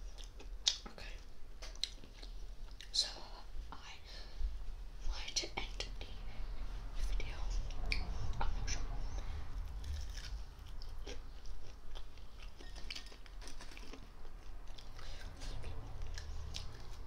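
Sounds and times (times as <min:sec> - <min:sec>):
chewing fried chicken: 0:00.0 - 0:03.0, 0:09.1 - 0:17.0
soft whispering: 0:00.8 - 0:01.3, 0:02.8 - 0:09.8, 0:14.9 - 0:17.0.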